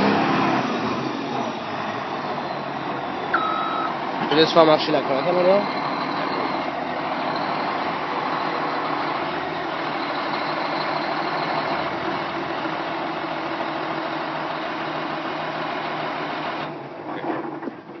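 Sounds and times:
diesel grader engine running: 0.0s - 18.0s.

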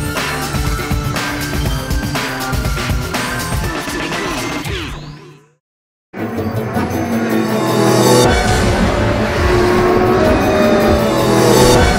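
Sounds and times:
car engine sound effect: 6.2s - 11.9s.

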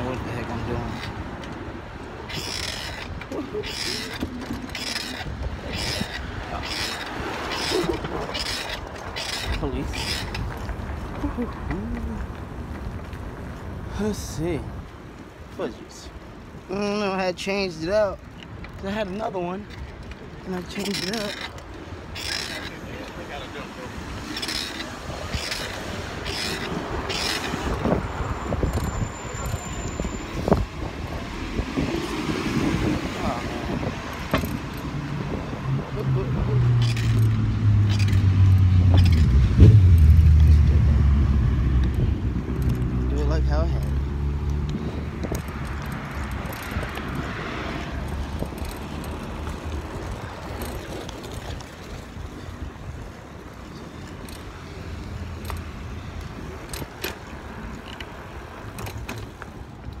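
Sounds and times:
traffic noise: 0.0s - 60.0s
light clicks and rattles: 43.6s - 52.0s.

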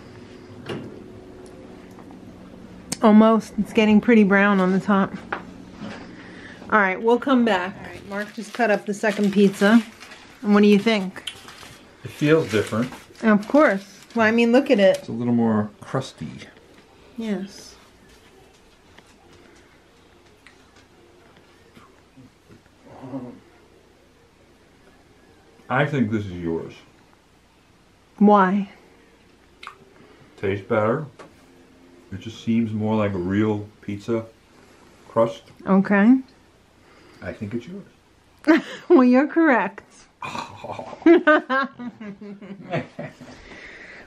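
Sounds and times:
toaster oven humming: 0.0s - 18.1s
soft low hums: 0.0s - 38.9s.

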